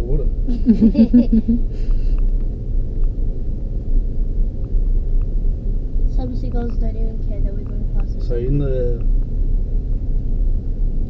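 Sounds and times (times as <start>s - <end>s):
car cabin engine and tyre drone: 0.0s - 11.0s.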